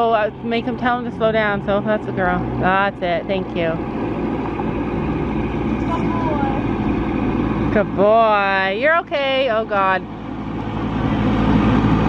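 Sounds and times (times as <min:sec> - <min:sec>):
tractor engine droning: 0:00.0 - 0:12.0.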